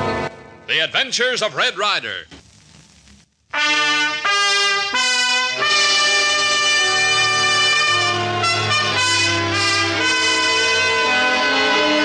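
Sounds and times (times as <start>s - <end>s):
brass orchestral fanfare: 3.6s - 12.0s.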